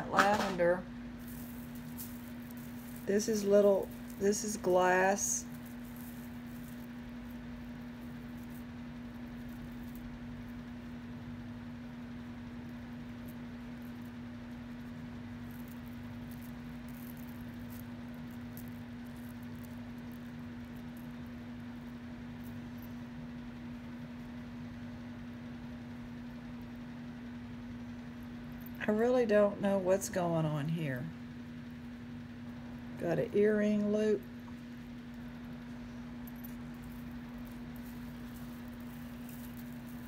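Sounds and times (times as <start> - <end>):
steady low hum: 0.0 - 40.0
metal jewelry chains clinking: 1.2 - 6.9, 36.2 - 40.0.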